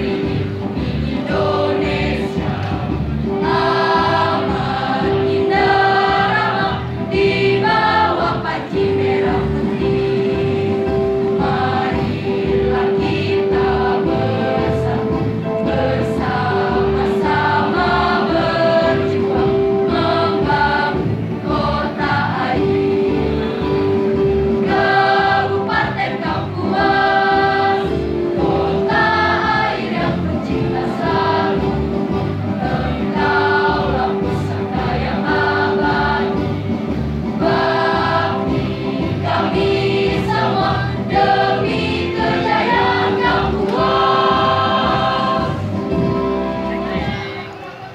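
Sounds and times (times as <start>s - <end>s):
choir singing a march: 0.0s - 47.4s
electronic keyboard accompaniment: 0.0s - 47.9s.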